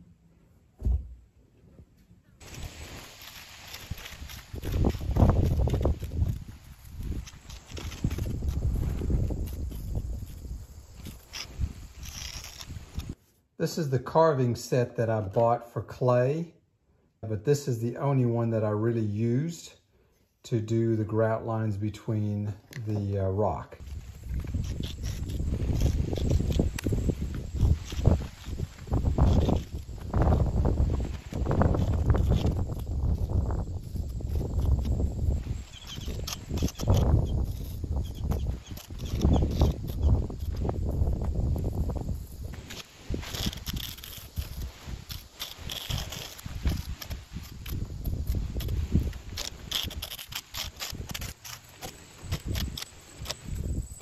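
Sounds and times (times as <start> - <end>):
carving tool scraping cement: 2.4 - 13.2, 23.8 - 54.0.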